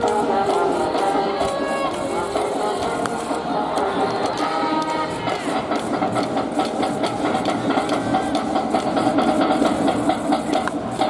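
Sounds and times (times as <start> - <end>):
crowd voices: 0.0 - 11.0
fast drumbeat: 0.0 - 11.0.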